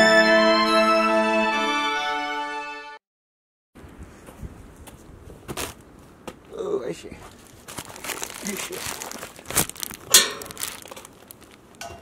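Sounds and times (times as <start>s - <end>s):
rustling crinkling handling: 7.1s - 12.0s.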